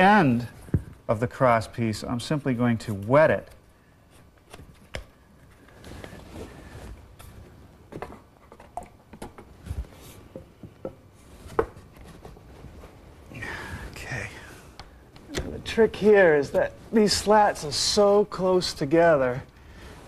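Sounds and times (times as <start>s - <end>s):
soft rustling: 3.9s - 8.5s, 11.1s - 14.3s.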